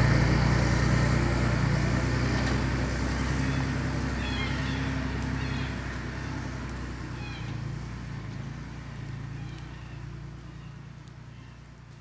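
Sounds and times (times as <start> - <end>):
vehicle engine idling: 0.0 - 12.0
faint bird chirp: 9.2 - 11.7.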